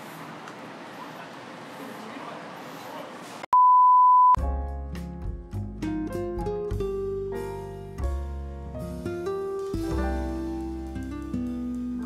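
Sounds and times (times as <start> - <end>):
steady test tone beep: 3.5 - 4.4.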